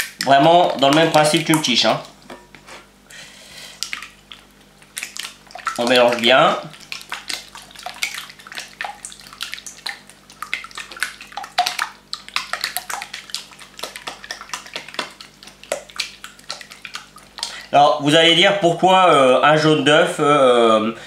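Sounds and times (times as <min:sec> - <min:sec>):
batter sloshing in bowl: 0:00.0 - 0:03.0, 0:03.8 - 0:18.1.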